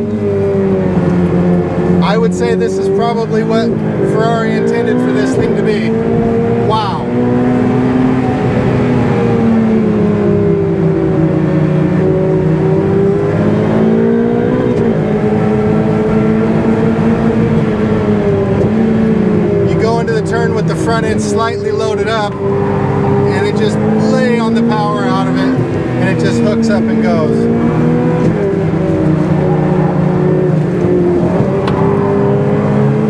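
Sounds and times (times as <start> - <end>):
car engine at high revs: 0.0 - 33.0
road and tyre noise: 0.0 - 33.0.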